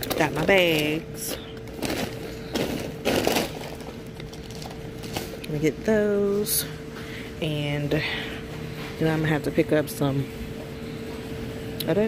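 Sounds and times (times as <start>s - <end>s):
packaging crackling and rustling: 0.0s - 5.4s
faint steady hum: 0.0s - 12.0s.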